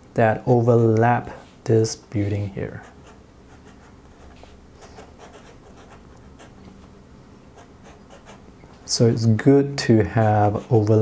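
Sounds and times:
pen nib scratching paper: 2.8s - 6.6s, 7.6s - 8.4s, 10.0s - 11.0s.

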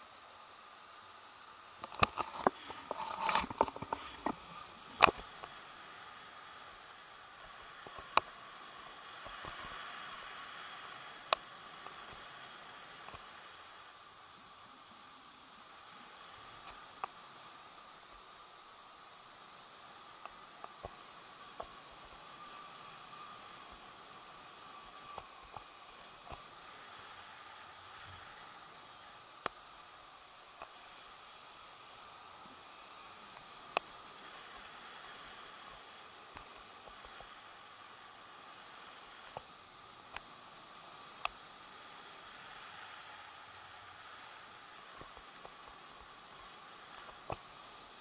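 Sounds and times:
faint steady hum: 0.0s - 48.0s.

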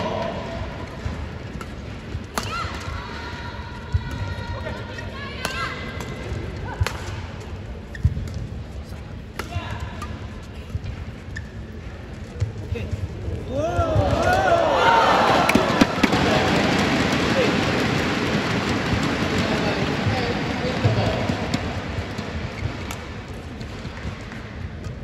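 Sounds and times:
racket hitting shuttlecock: 0.2s - 2.9s, 5.4s - 7.3s, 9.3s - 10.1s, 15.4s - 25.0s
shoes squeaking on court: 7.8s - 8.4s, 10.5s - 12.6s.

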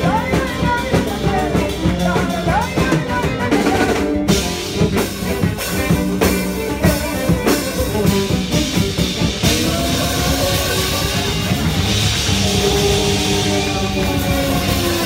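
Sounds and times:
drum kit: 0.0s - 15.0s
live band playing: 0.0s - 15.0s.

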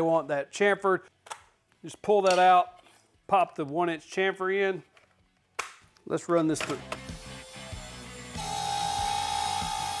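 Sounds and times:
background music with a beat: 6.8s - 10.0s
router whining cutting wood: 7.0s - 10.0s.

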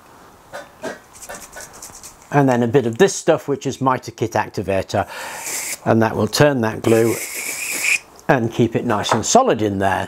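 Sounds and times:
aerosol can being shaken: 1.1s - 2.3s, 5.4s - 5.8s, 6.9s - 8.0s.

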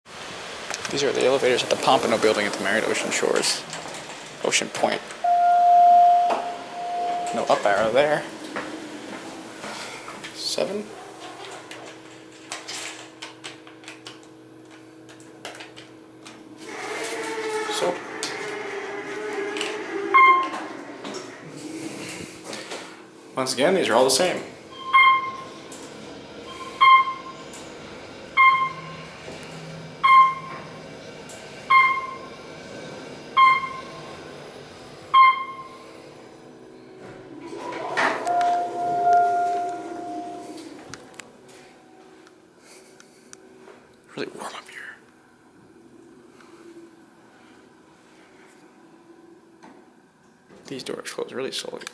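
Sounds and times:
elevator hum: 0.1s - 43.9s
elevator electronic chime: 5.2s - 7.6s, 24.7s - 25.5s, 26.4s - 27.4s, 28.4s - 29.0s, 30.0s - 30.6s, 31.7s - 32.3s, 33.4s - 34.0s, 35.1s - 35.8s, 38.2s - 40.7s.

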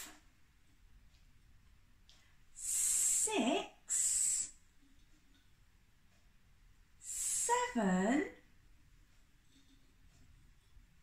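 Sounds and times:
woman counting aloud: 2.6s - 4.5s, 7.1s - 8.4s.

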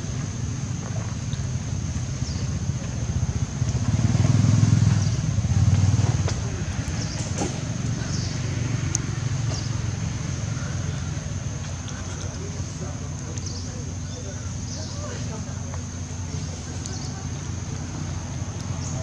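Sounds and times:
vehicle engine rumbling past: 0.0s - 19.0s.

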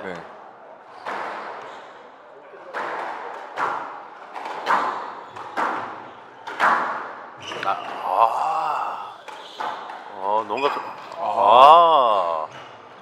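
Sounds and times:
squash ball hits: 2.7s - 8.0s.

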